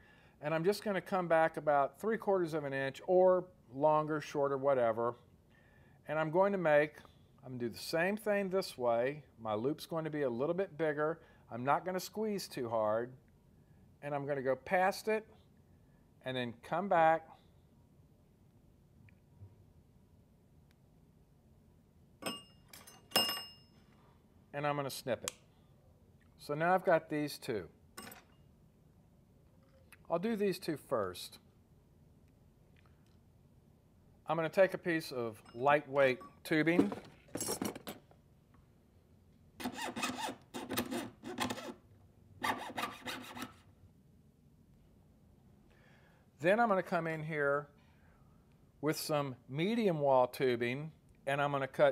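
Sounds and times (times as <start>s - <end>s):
metal hand tools clinking: 22.2s - 23.6s, 35.4s - 38.0s
saw rasping through metal tubing: 39.6s - 41.8s, 42.4s - 43.6s.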